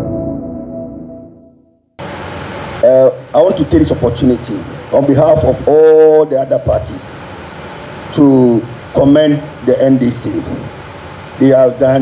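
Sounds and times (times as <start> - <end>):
jingle ringing chord: 0.0 - 1.8
microphone room hiss: 2.0 - 12.0
man speaking: 2.8 - 7.2, 8.1 - 10.7, 11.4 - 12.0.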